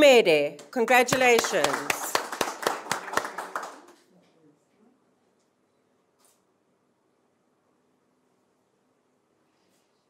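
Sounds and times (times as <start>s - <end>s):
people clapping: 0.5s - 4.1s.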